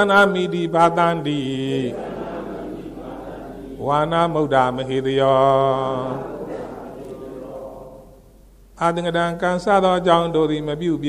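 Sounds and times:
man chanting: 0.0s - 6.6s, 8.8s - 11.0s.

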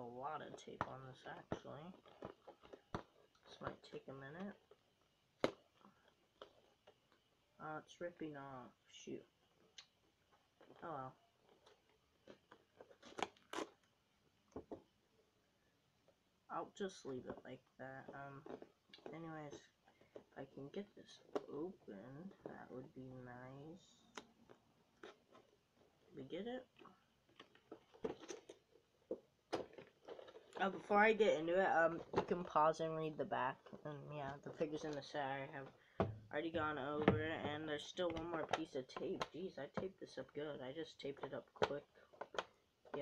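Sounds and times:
toy box crinkles and taps: 0.5s - 3.9s, 27.2s - 30.9s, 41.1s - 43.0s.

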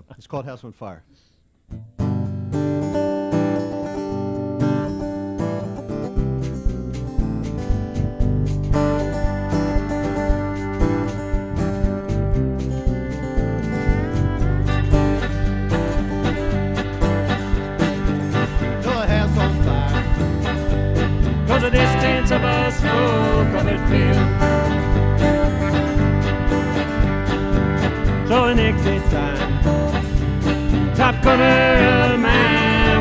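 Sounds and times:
strummed acoustic guitar: 1.7s - 33.0s
country-rock band playing live: 5.4s - 33.0s.

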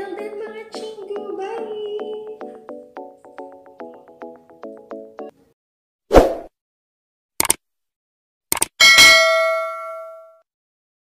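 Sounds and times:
mouse clicks: 7.4s - 7.6s
bell ding: 8.8s - 10.4s.

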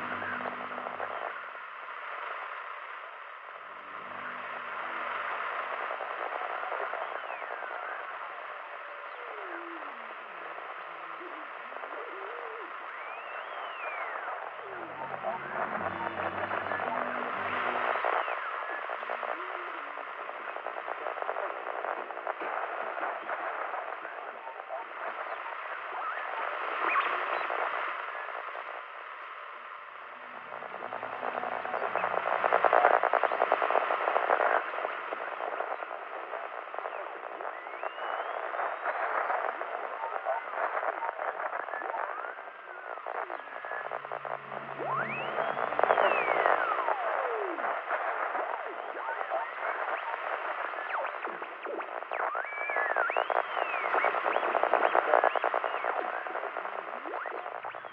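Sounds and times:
faint broadcast voices: 0.0s - 57.9s
gliding radio whistles: 0.0s - 57.9s
radio static hissing and crackling: 0.0s - 57.9s.

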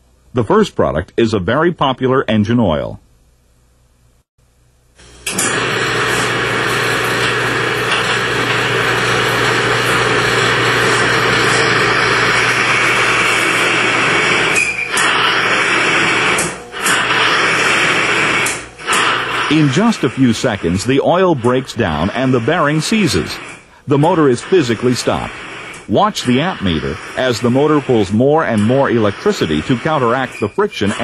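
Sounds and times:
metal-on-metal grinding machine: 5.0s - 31.0s.

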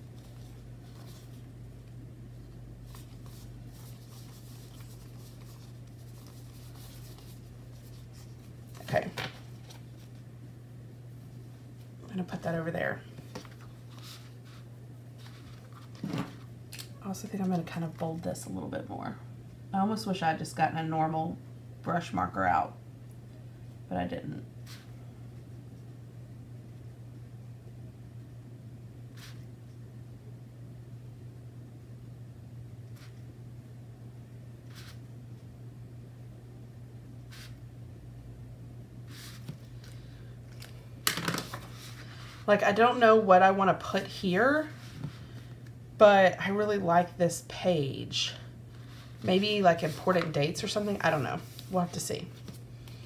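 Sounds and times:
steady low hum: 0.0s - 53.0s
paper rustling: 2.8s - 10.2s, 15.2s - 16.8s, 39.1s - 42.4s
notebook handling noise: 39.1s - 42.0s.

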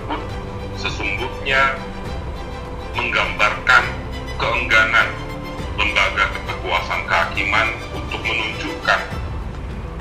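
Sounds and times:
background music: 0.0s - 10.0s
man speaking: 0.1s - 1.9s, 2.9s - 9.2s.

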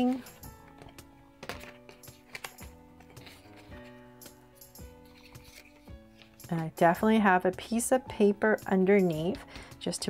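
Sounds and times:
quiet background music: 0.0s - 10.0s
paper creasing and folding: 3.1s - 4.0s, 5.0s - 6.4s.

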